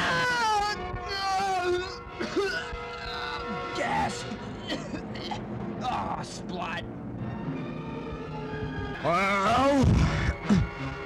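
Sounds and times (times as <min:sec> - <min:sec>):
background music steady note: 0:00.0 - 0:11.0.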